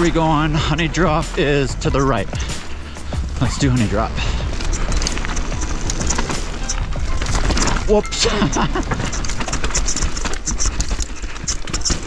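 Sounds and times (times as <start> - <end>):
background music: 0.0 - 9.6
bike rattling clicks and knocks: 0.0 - 12.0
bike tyres rumbling on dirt: 0.0 - 12.0.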